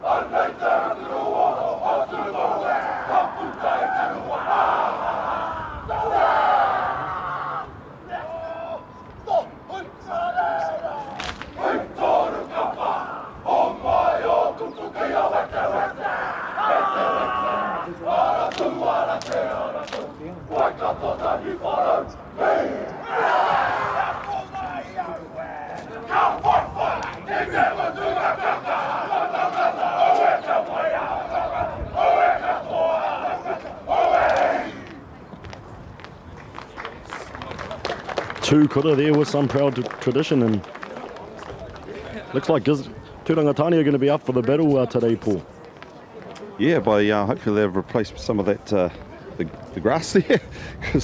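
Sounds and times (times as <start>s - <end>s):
men shouting and chanting in unison: 0.0s - 19.9s, 20.5s - 34.8s
sharp slaps: 11.1s - 11.6s.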